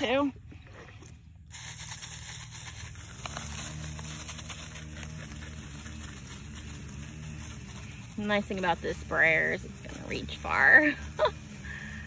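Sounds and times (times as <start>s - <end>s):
low steady hum: 0.0s - 12.0s
garden sprayer hissing: 1.4s - 12.0s.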